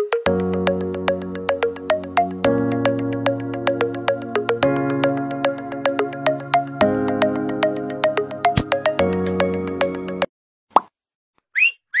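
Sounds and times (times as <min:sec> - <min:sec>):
music: 0:00.0 - 0:10.3
whistled chirps: 0:11.6 - 0:12.0.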